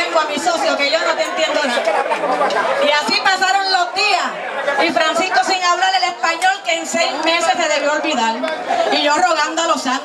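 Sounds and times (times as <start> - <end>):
woman speaking into a microphone: 0.0 - 1.9, 2.8 - 10.0
crowd chatter: 0.0 - 10.0.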